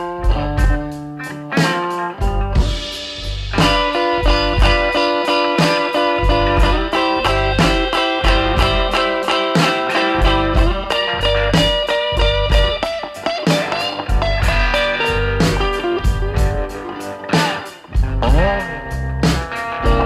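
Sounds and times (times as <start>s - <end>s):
electric blues band playing: 0.0s - 20.0s.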